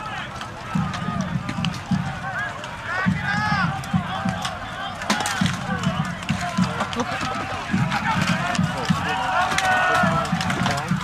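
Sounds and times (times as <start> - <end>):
fighters shouting: 0.0 - 11.0.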